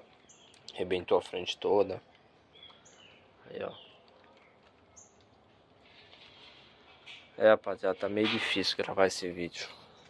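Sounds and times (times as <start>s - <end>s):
high bird chirp: 2.4s - 5.3s.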